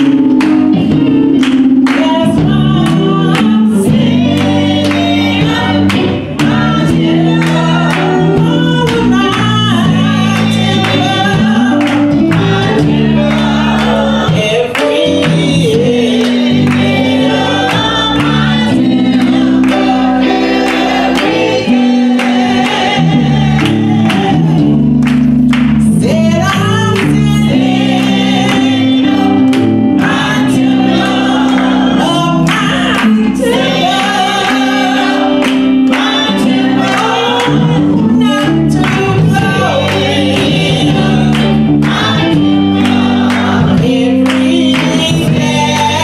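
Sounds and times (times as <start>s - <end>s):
live band with drums and guitar: 0.0s - 46.0s
women singing gospel together: 0.0s - 46.0s.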